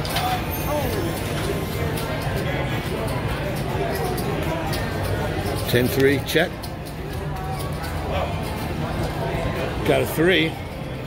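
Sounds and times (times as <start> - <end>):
faint music: 0.0 - 11.0
voices chattering: 0.0 - 11.0.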